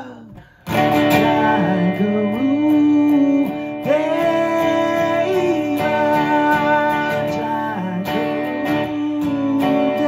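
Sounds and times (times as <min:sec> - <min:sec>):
amplified acoustic guitar strumming: 0:00.0 - 0:10.0.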